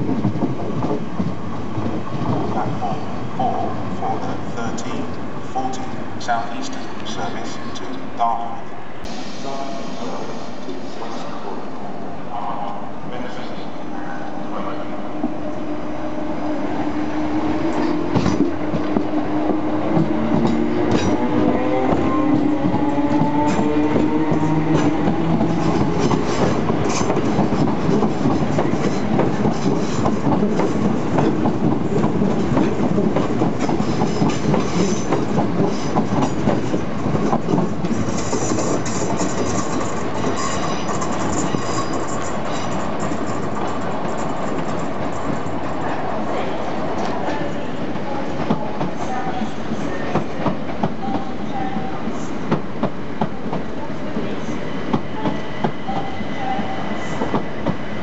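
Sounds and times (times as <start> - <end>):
train wheels clattering over joints: 17.8 - 46.0.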